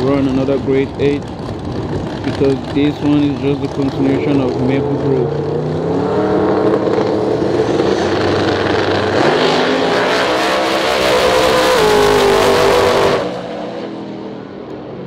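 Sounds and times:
drag car engines at full throttle: 0.0 - 15.0.

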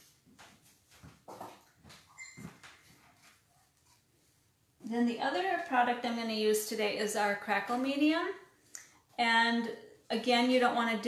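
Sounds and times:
brief high squeak: 2.1 - 2.5.

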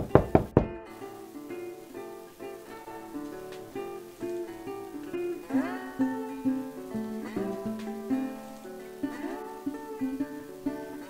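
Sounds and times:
knocking on a door: 0.0 - 0.8
plucked-string background music: 0.0 - 11.0.

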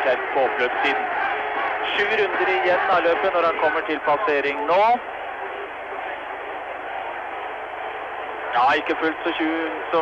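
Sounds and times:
crowd murmur: 0.0 - 8.6.

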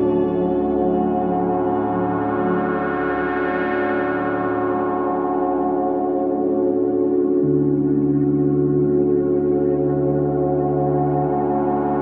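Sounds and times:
ambient meditation music: 0.0 - 12.0.

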